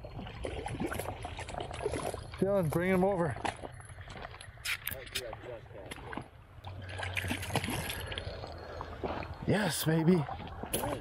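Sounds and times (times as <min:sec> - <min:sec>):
rumble of moving water: 0:00.0 - 0:11.0.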